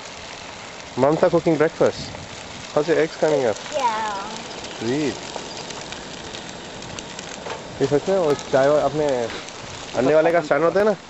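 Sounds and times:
eggs sizzling in a pan: 0.0 - 11.0.

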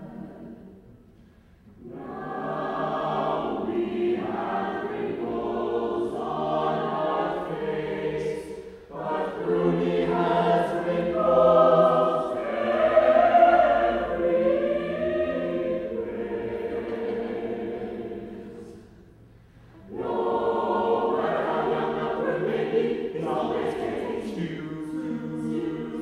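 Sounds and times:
choir singing: 0.0 - 26.0.

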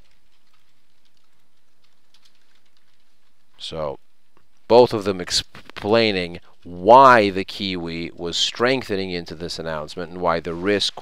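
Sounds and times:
computer keyboard clicks: 0.0 - 3.3
low steady background hiss: 0.0 - 11.0.

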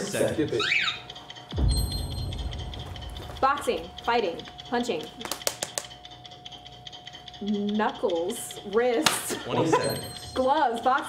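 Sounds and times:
sharp taps: 2.3 - 6.2.

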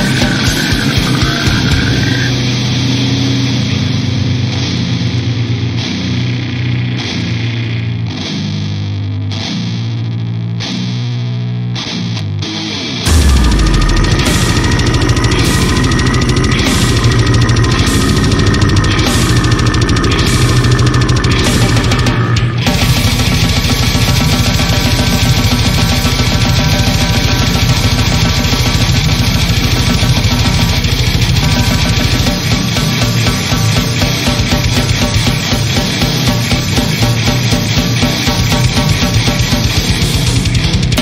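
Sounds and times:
death metal band playing: 0.0 - 41.0
deep bass hit: 13.0 - 41.0
cymbal strikes: 13.1 - 41.0.

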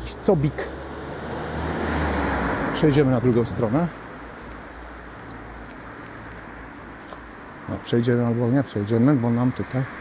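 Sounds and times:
car driving past: 0.6 - 3.0.

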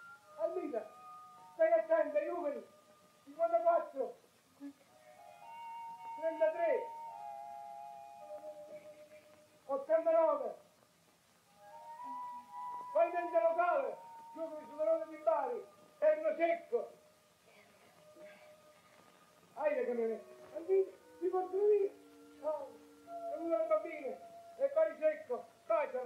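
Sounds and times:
soft film score woodwind notes: 11.6 - 16.4, 20.0 - 25.0.

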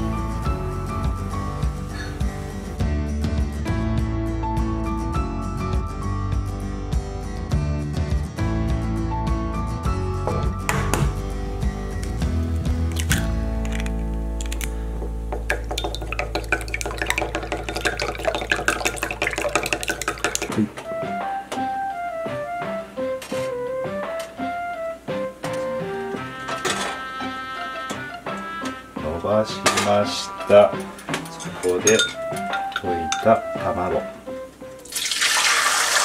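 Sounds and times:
background music: 0.0 - 36.0.

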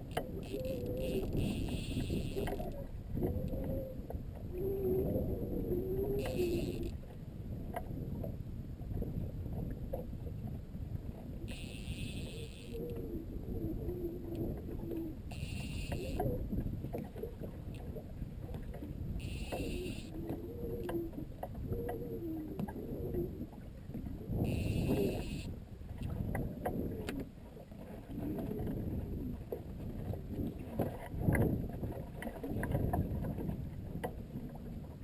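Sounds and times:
wind and water rumble: 0.0 - 35.0
high buzzing bursts: 11.5 - 12.8, 15.3 - 16.2, 19.2 - 20.1, 24.5 - 25.5.

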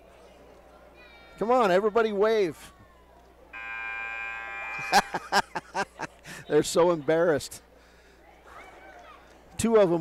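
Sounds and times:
scoreboard buzzer: 3.6 - 5.4.

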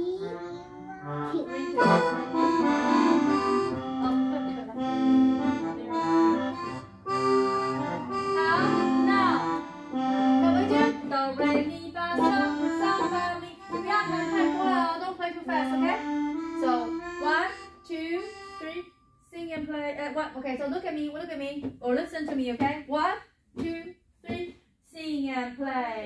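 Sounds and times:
digital pianos playing reedy notes: 0.2 - 18.7.

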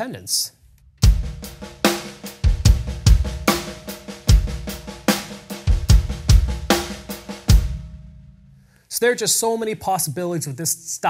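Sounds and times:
drum kit playing a groove: 1.0 - 8.4.

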